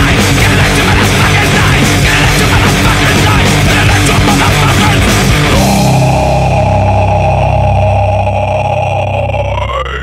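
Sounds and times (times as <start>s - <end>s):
heavy metal band playing: 0.0s - 10.0s
sustained bass: 0.0s - 10.0s
distorted electric guitar chord: 0.1s - 9.7s.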